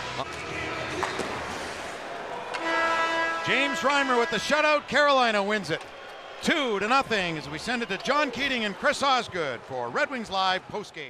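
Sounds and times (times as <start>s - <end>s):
arena crowd noise: 0.0s - 11.0s
end of game horn: 2.6s - 4.5s.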